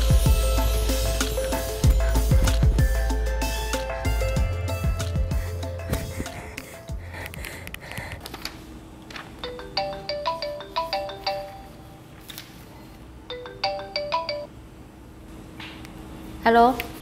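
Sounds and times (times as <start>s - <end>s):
smartphone ringtone melody: 9.4s - 12.1s, 13.3s - 14.5s.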